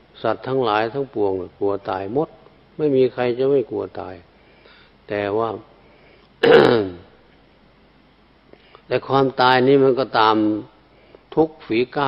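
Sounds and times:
man clearing his throat: 6.4s - 7.2s.

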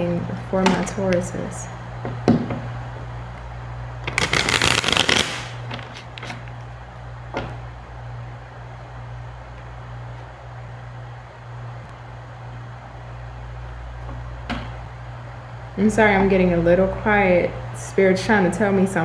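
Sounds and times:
cards riffle-shuffled: 4.1s - 6.4s.

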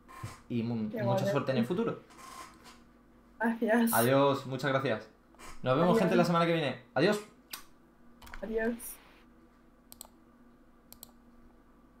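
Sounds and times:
computer clicks: 9.9s - 10.2s, 10.9s - 11.2s.

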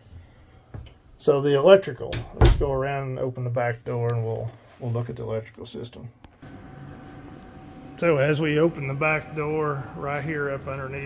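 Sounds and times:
steady background hum: 5.3s - 11.0s.

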